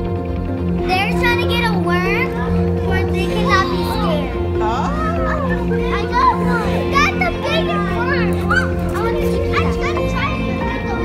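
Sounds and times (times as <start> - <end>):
background music: 0.0 - 11.0
children chattering: 0.0 - 11.0.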